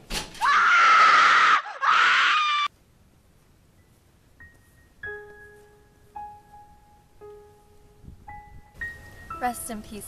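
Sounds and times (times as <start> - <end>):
girl screaming: 0.4 - 2.7.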